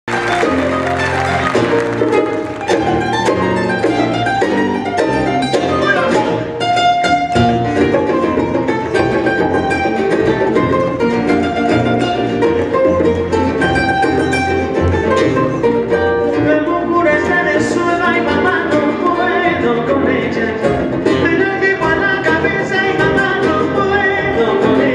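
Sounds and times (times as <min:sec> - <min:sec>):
acoustic bass guitar: 0:00.1 - 0:24.9
lead guitar melody: 0:00.1 - 0:24.9
strummed guitar: 0:00.1 - 0:24.9.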